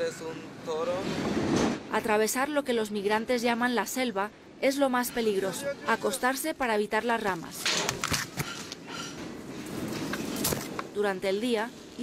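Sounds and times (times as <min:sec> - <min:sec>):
moving freight train: 0:00.0 - 0:02.3.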